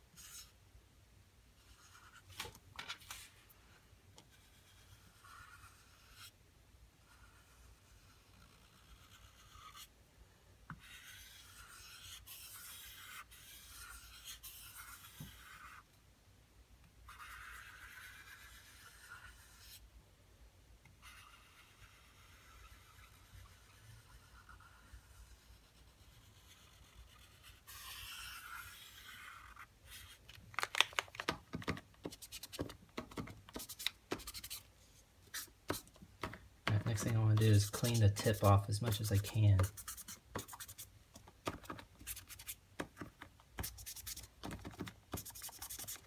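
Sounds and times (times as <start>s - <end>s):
paint marker scrubbing on surface: 10.8s - 15.8s, 17.1s - 19.8s, 21.0s - 30.2s, 32.0s - 35.9s, 36.8s - 40.9s, 41.6s - 42.6s, 43.6s - 44.3s, 45.1s - 46.0s.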